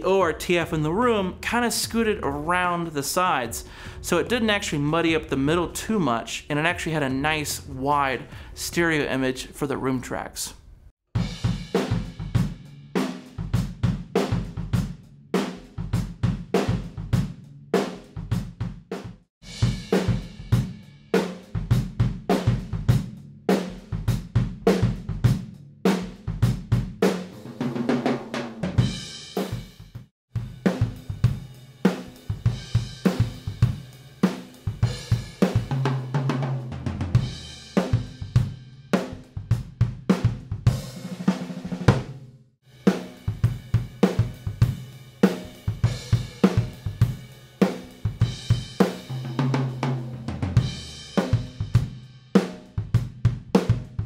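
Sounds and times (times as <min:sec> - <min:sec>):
drum kit groove: 0:00.0 - 0:10.2, 0:11.1 - 0:54.0.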